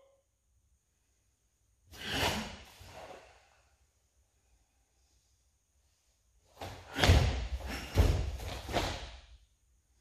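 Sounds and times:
bare feet thudding on a mat: 0:06.5 - 0:09.3
karate gi snapping: 0:06.6 - 0:09.3.

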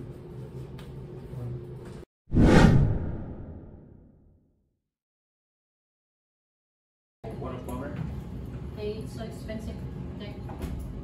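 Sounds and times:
whoosh transition: 0:02.3 - 0:04.1.

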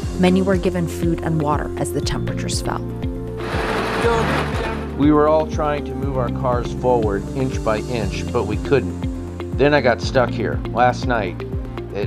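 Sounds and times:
news music with low pulse: 0:00.0 - 0:12.0
rough rattling noise: 0:03.4 - 0:05.0.

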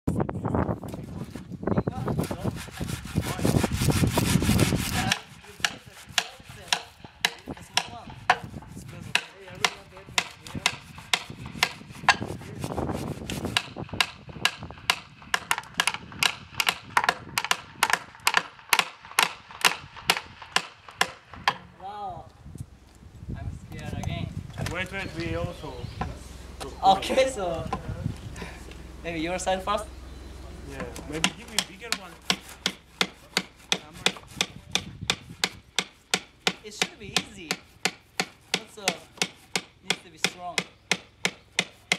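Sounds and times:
hammer blows on wood: 0:01.9 - 0:21.7, 0:31.1 - 0:41.9
tool striking wood: 0:02.6 - 0:12.4, 0:13.0 - 0:21.7, 0:30.8 - 0:41.9.

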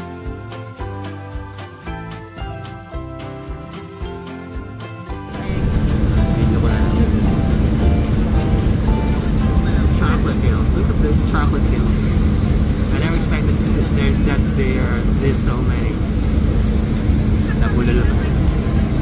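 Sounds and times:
airliner cabin rumble: 0:05.4 - 0:19.0
muffled voices talking: 0:05.4 - 0:19.0.

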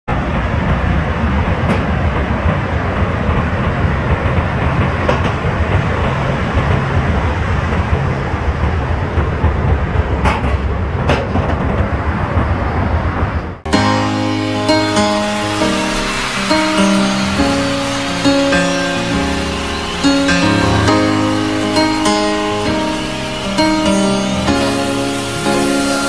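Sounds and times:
ocean surf: 0:13.7 - 0:26.0.

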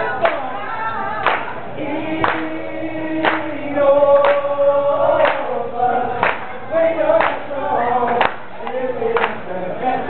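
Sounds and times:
group singing long held notes: 0:00.0 - 0:10.0.

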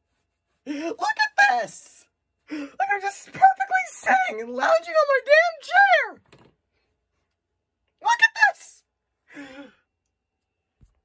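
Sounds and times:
person sighing: 0:09.3 - 0:09.9.

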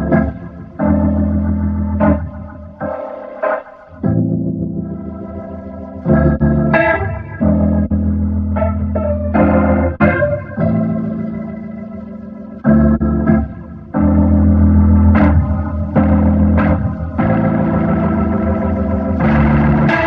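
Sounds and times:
electric piano chords: 0:00.0 - 0:20.0.

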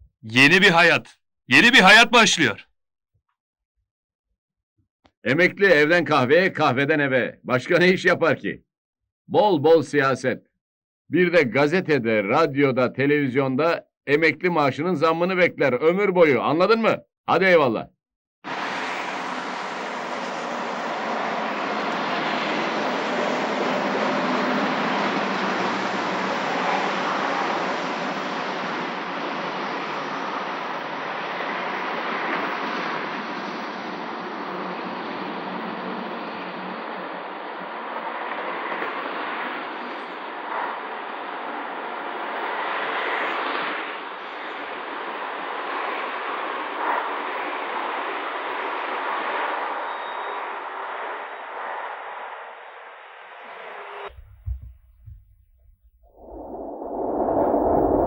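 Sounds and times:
brief louder sounds: 0:54.1 - 0:58.0.

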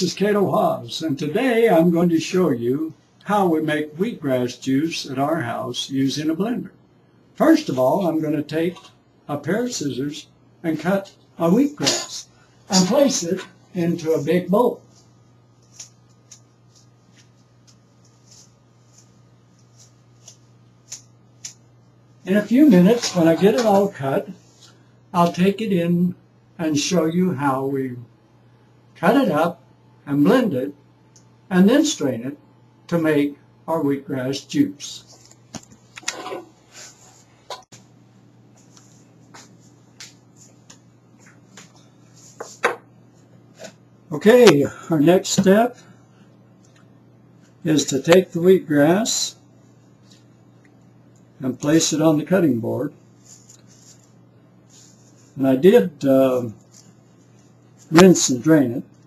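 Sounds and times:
low steady hum: 0:00.0 - 0:59.0.

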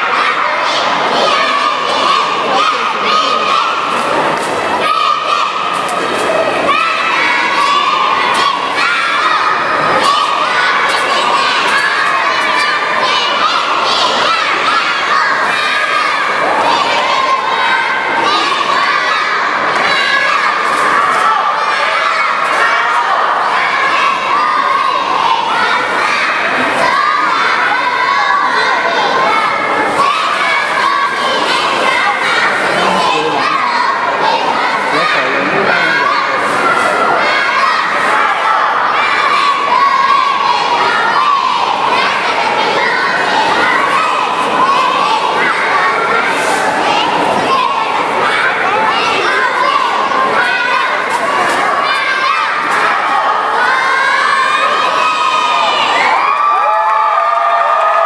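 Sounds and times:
crowd cheering: 0:00.0 - 0:58.0
girls shouting a cheer chant: 0:00.0 - 0:58.0.

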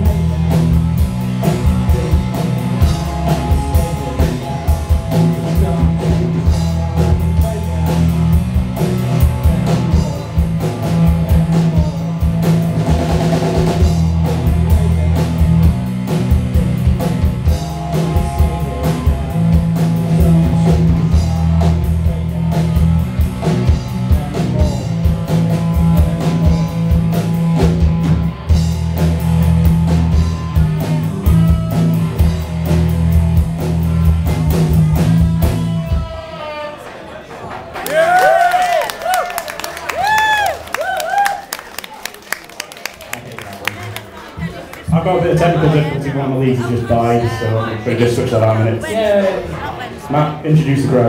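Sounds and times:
drum beat: 0:00.0 - 0:35.6
electric guitars: 0:00.0 - 0:36.5
bass guitar: 0:00.0 - 0:36.7.

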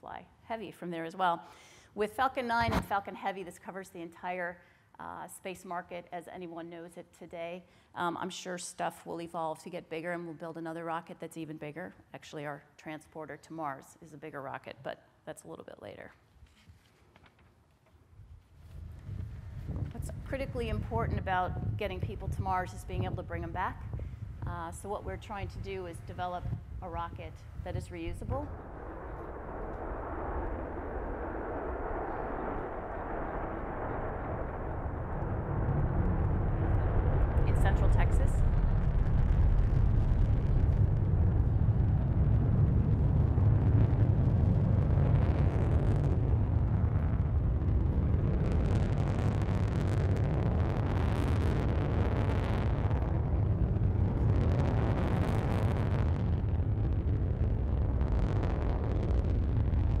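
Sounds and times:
rocket engine rumble over loudspeakers: 0:18.8 - 1:00.0.

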